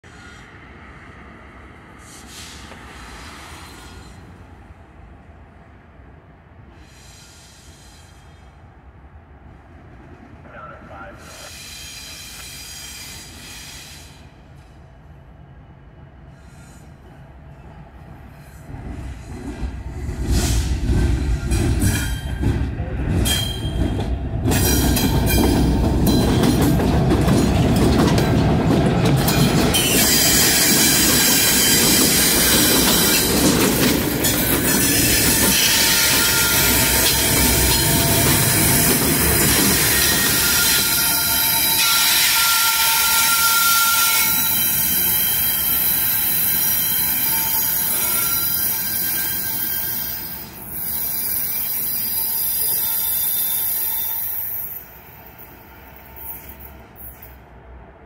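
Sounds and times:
diesel locomotive engine rumbling: 0:00.0 - 0:58.0.

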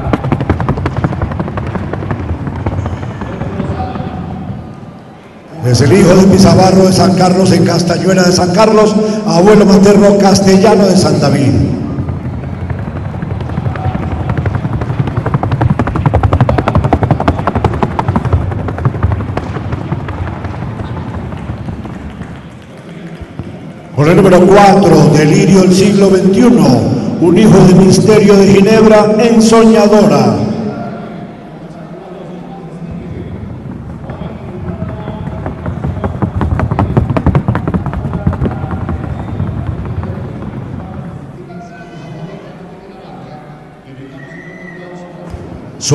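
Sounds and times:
horse hooves on wooden board: 0:00.0 - 0:03.7, 0:12.1 - 0:23.7, 0:33.9 - 0:40.7.

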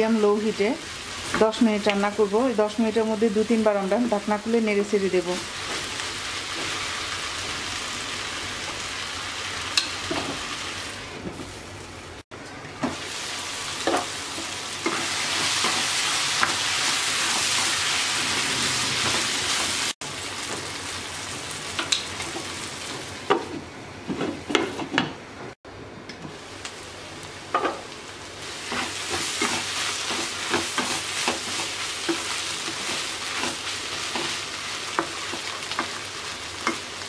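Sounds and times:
food sizzling in a pan: 0:00.0 - 0:12.2, 0:12.8 - 0:23.6, 0:26.3 - 0:37.0.

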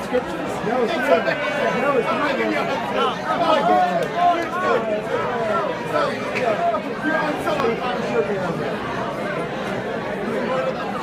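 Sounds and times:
many people chatting: 0:00.0 - 0:11.0.

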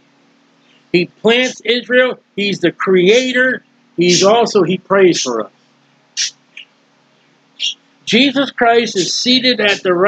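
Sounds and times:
mouth noises: 0:04.0 - 0:05.4, 0:06.1 - 0:06.8, 0:07.6 - 0:10.0.

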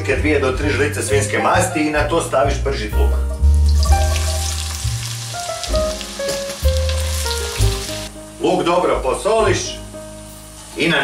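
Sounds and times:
background music with deep bass: 0:00.0 - 0:11.0
onions sizzling in hot fat: 0:03.3 - 0:11.0.

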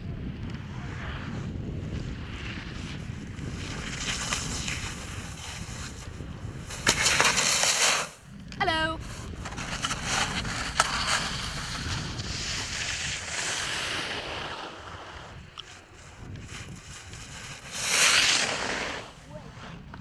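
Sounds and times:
wind buffeting microphone: 0:00.0 - 0:07.5, 0:08.1 - 0:20.0
skier sliding on snow: 0:00.5 - 0:20.0
skis hissing on snow: 0:03.5 - 0:08.2, 0:09.0 - 0:19.5.

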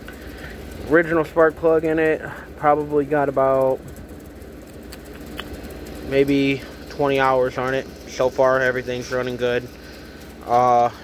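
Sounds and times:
generator engine running: 0:00.0 - 0:11.0.

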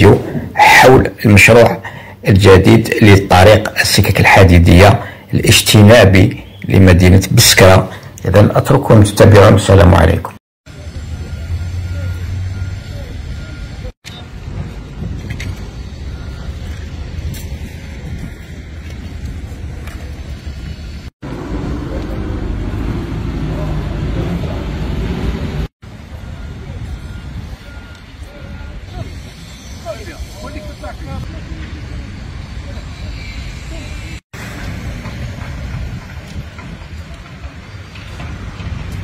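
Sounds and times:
heavy machinery engine: 0:10.7 - 0:39.0.

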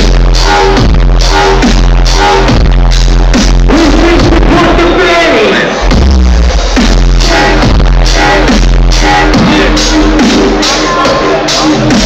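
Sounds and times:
heavy sub-bass: 0:00.0 - 0:12.0.

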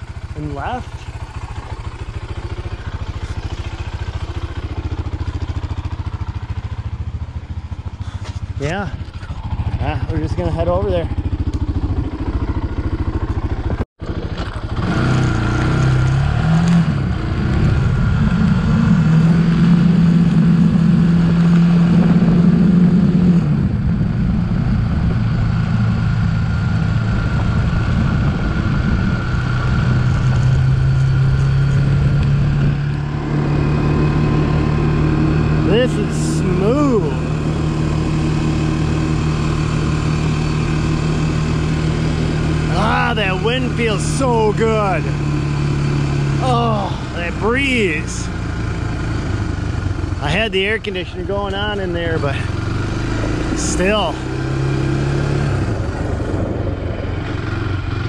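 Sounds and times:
atv engine running: 0:00.0 - 0:58.0.

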